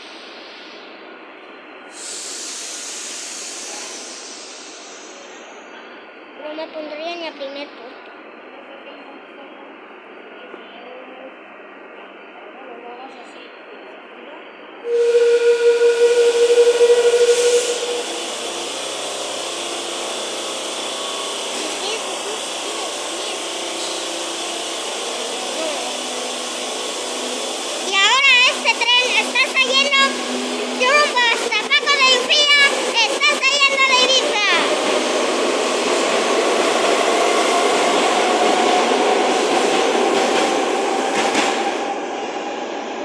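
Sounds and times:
train low steady noise: 0.0 - 43.0
train running noise: 0.0 - 43.0
loud hiss with whistling tone: 1.9 - 6.1, 14.9 - 31.2.

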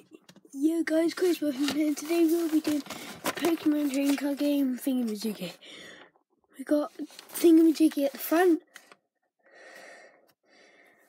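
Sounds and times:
faint breath near microphone: 5.6 - 6.2, 9.4 - 11.0.

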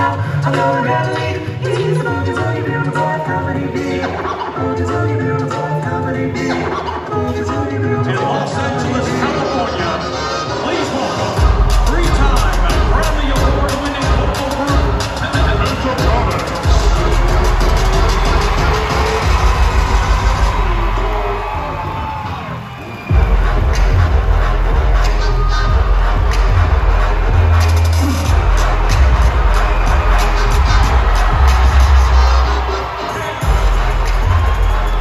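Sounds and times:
live concert music with heavy bass: 0.0 - 35.0
crowd cheering: 9.2 - 35.0.

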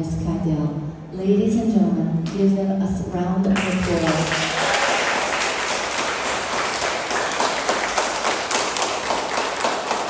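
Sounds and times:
crowd applauding: 3.6 - 10.0.

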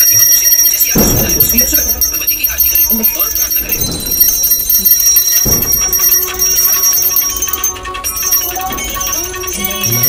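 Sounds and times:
hand bell ringing: 0.0 - 10.0
low thud: 1.0 - 2.1.

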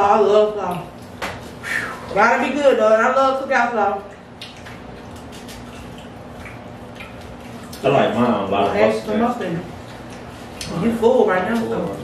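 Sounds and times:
wet chewing: 4.0 - 12.0.

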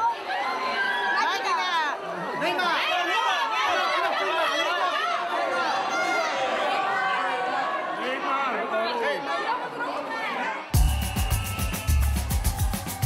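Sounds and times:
crowd chattering and calling out: 0.0 - 13.0
higher shouts: 10.8 - 13.0.

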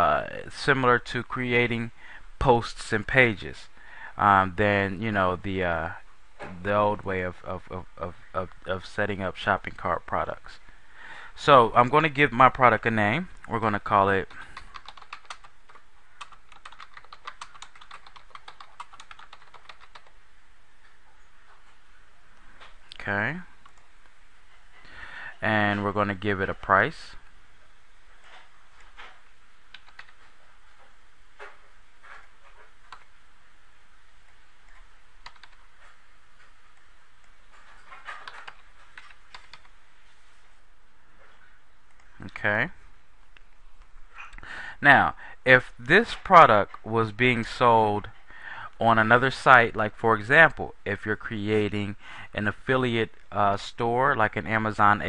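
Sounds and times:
faint steady hiss: 0.0 - 55.0
computer keyboard typing: 14.2 - 20.2, 29.7 - 30.3, 35.2 - 35.6, 38.1 - 39.7.

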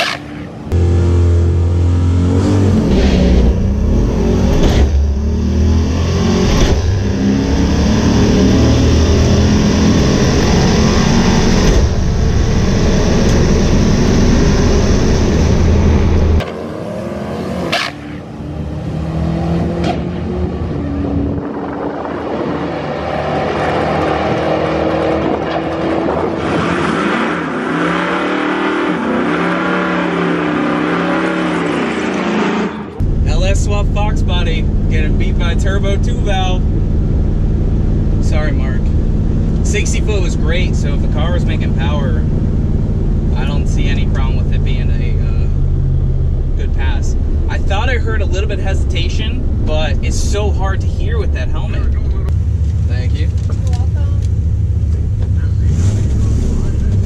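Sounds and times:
engine at full throttle: 0.0 - 57.0.

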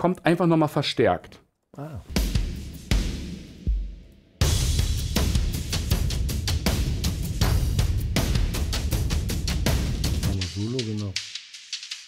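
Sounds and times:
drum beat with loud snare hits: 2.0 - 12.0.

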